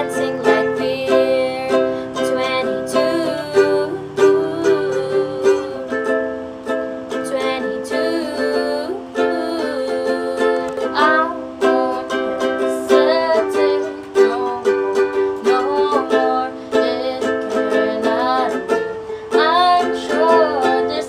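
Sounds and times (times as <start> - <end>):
girl singing: 0.0 - 21.0
ukulele strumming: 0.0 - 21.0.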